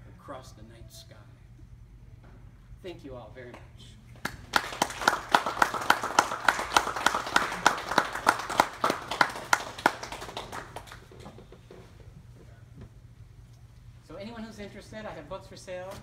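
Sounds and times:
loud regular clapping close by: 0:03.5 - 0:11.4
small audience applauding: 0:04.2 - 0:11.5.

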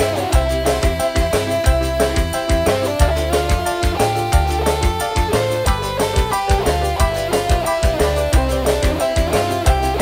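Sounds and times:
bass guitar: 0:00.0 - 0:10.0
electric guitar melody: 0:00.0 - 0:10.0
steady drum beat: 0:00.0 - 0:10.0.

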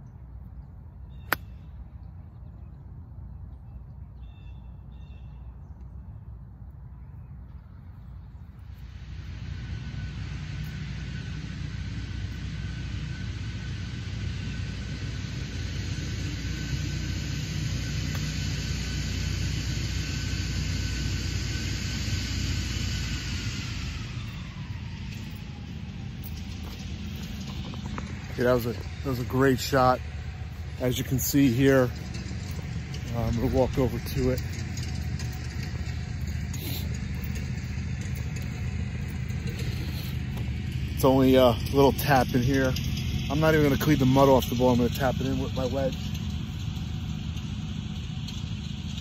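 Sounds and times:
distant engine rumble: 0:00.0 - 0:49.0
golf club striking ball: 0:01.3 - 0:01.6.

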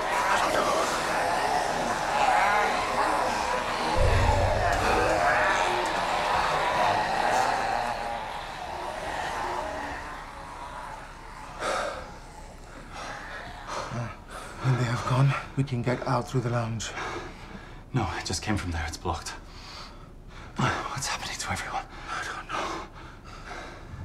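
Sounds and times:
low thud: 0:04.0 - 0:05.7.

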